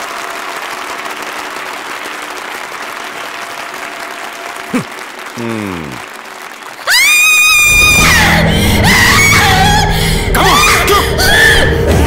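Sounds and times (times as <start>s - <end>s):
high scream: 6.8s - 9.5s.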